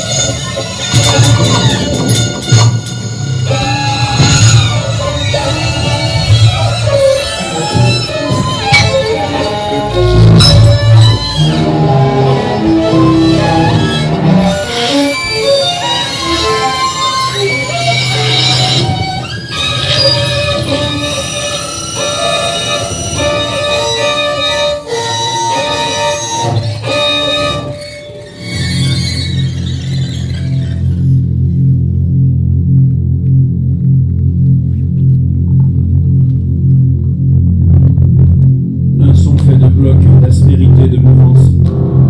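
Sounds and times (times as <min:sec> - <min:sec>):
percussion: 0:00.0 - 0:11.7
violin sliding high notes: 0:00.0 - 0:31.1
dense noisy low layer: 0:00.0 - 0:42.0
steady low hum: 0:30.8 - 0:42.0.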